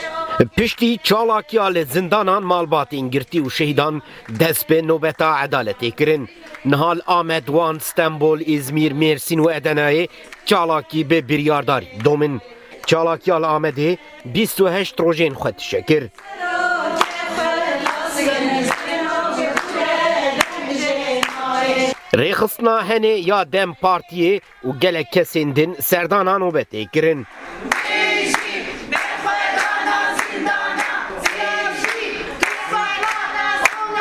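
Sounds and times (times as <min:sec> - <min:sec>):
women singing in unison: 0:00.0 - 0:02.4, 0:03.0 - 0:22.9, 0:26.9 - 0:34.0
hands clapping steady beat: 0:02.9 - 0:05.4, 0:06.0 - 0:07.5, 0:10.3 - 0:10.5, 0:11.9 - 0:13.1, 0:16.1 - 0:22.3, 0:24.3 - 0:24.6, 0:27.6 - 0:34.0.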